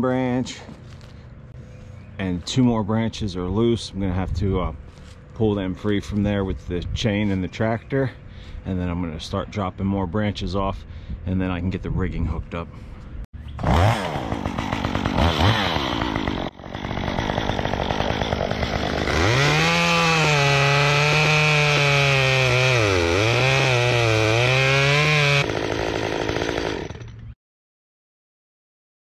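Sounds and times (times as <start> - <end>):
chainsaw cutting branch: 13.6 - 27.4.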